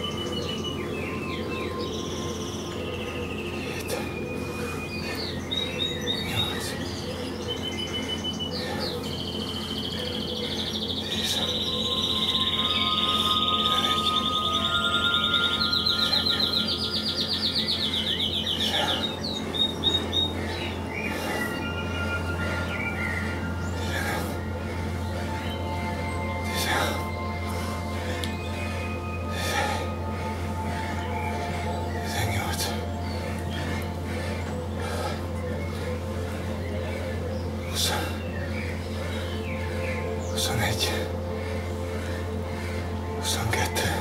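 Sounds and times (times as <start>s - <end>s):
birds chirping and singing: 0.0s - 44.0s
steady low hum: 0.0s - 44.0s.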